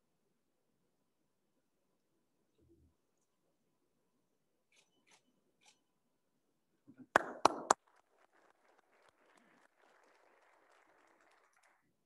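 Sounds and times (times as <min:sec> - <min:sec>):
sharp handclaps: 0:07.0 - 0:11.9
scattered applause: 0:07.1 - 0:12.0.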